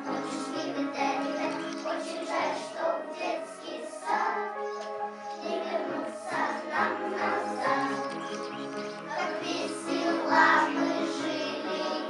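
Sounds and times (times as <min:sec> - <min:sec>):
children singing: 0:00.0 - 0:12.0
recorded musical accompaniment: 0:00.0 - 0:12.0.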